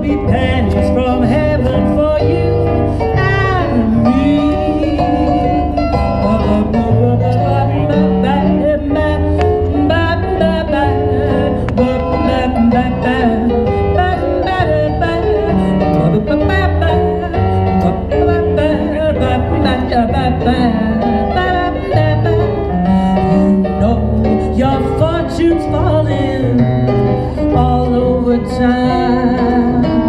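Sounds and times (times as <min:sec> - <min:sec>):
live blues music through pa: 0:00.0 - 0:30.0.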